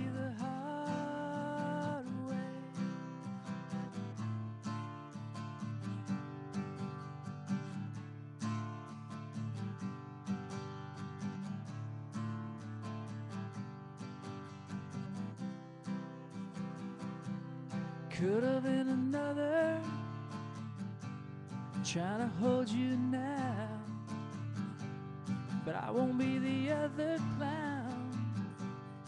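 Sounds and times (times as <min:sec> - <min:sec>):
acoustic guitar strumming: 0:00.0 - 0:29.0.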